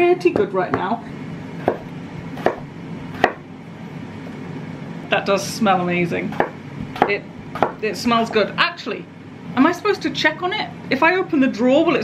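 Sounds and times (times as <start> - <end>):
knife chopping on wooden board: 1.6 - 3.5, 6.3 - 7.8.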